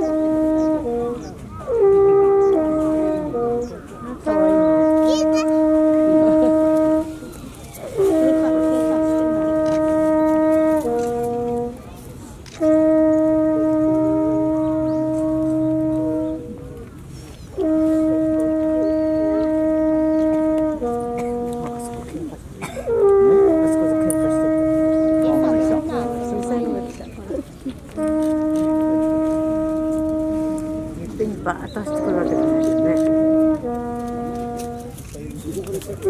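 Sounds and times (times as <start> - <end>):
horn notes: 0.0 - 36.0.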